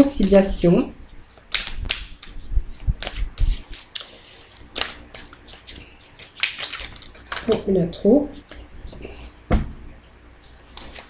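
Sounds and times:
cards being shuffled: 1.1 - 7.8, 10.0 - 11.0.

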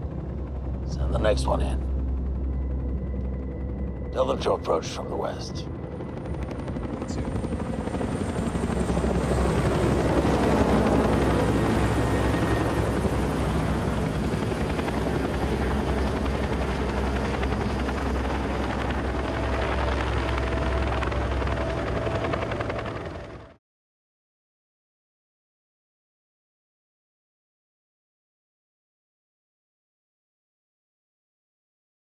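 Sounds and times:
helicopter rotor and engines: 0.0 - 23.6.

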